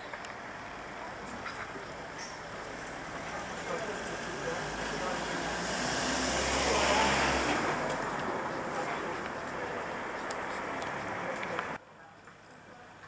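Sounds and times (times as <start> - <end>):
vehicle engine rumble: 0.0 - 11.8.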